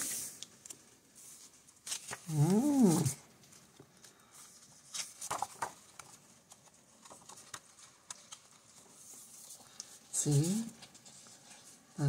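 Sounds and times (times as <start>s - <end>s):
paper page turning: 0.0s - 11.9s
person humming: 2.2s - 3.3s.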